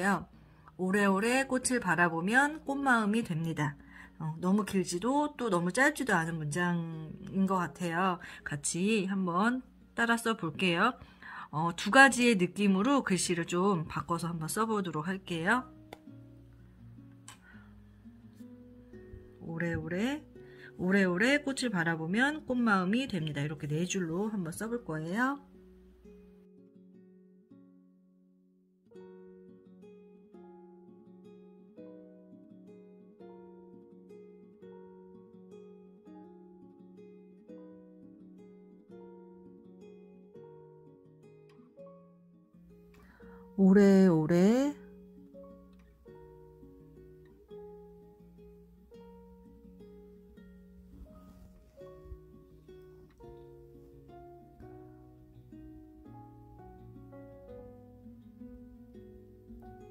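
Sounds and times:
plucked string melody: 0:00.0 - 0:27.8, 0:28.8 - 0:59.9
plucked guitar-like notes: 0:44.3 - 0:59.9.

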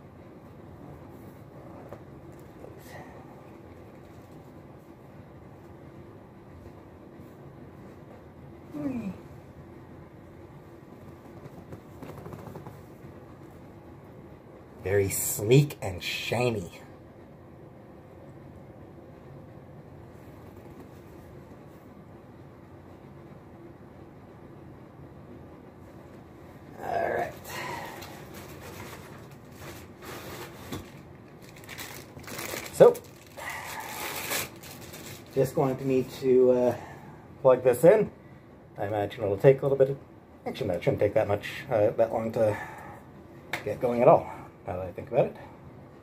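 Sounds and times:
low room hum: 0:00.0 - 0:46.0
plastic packaging crinkling: 0:27.9 - 0:35.6.

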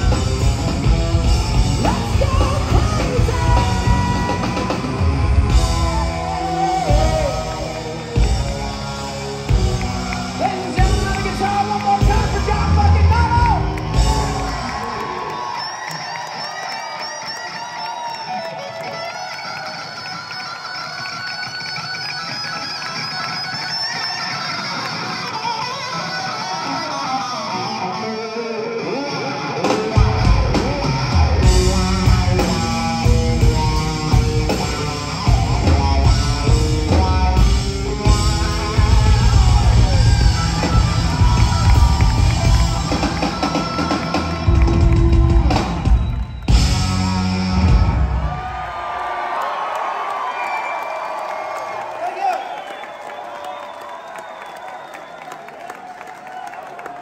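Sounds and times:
bass guitar: 0:00.0 - 0:15.1, 0:26.2 - 0:48.5
electric guitar solo: 0:00.0 - 0:48.5
rock band playing: 0:00.0 - 0:49.1
drums: 0:00.0 - 0:49.2.

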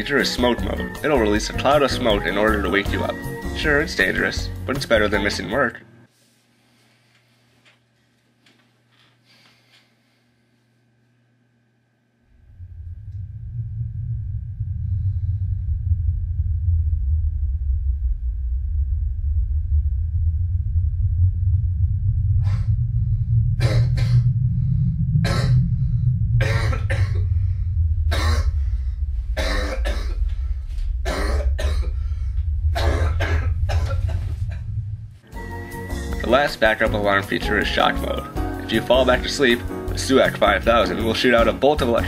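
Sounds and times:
low rushing noise: 0:12.4 - 0:37.7
man coughing harshly: 0:26.4 - 0:27.2, 0:29.4 - 0:30.2, 0:31.1 - 0:32.0, 0:32.8 - 0:34.2.

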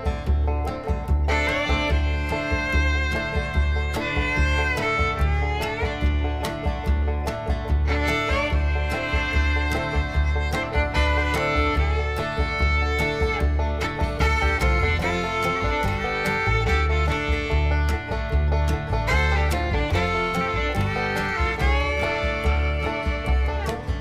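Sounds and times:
steady bass beat: 0:00.0 - 0:24.0
string melody: 0:00.0 - 0:24.0.

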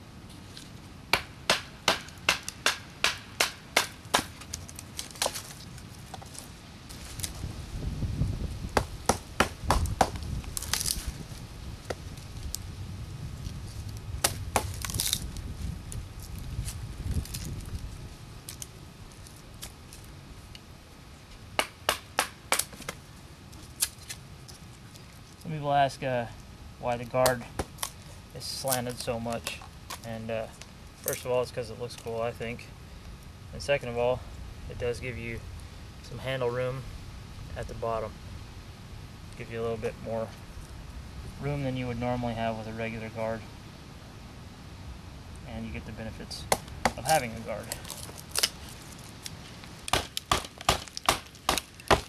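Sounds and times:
knife chopping firewood: 0:01.1 - 0:05.5, 0:08.8 - 0:11.0, 0:14.2 - 0:15.3, 0:21.6 - 0:23.0, 0:27.2 - 0:28.0, 0:46.4 - 0:52.0
rustling and handling noise: 0:04.2 - 0:07.7, 0:46.6 - 0:52.0.

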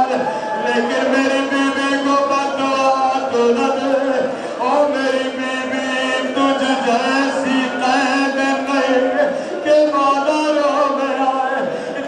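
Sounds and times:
man chanting a lament: 0:00.0 - 0:12.0.

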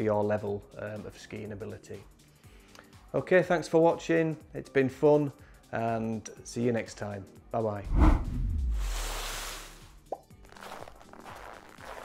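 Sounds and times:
quiet background music: 0:00.0 - 0:12.0
noisy whoosh: 0:07.8 - 0:09.4
short rising bloop: 0:07.9 - 0:09.4.

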